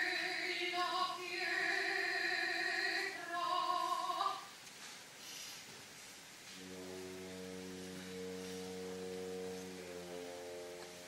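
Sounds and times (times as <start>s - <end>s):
orchestra sustained chord: 6.5s - 11.0s.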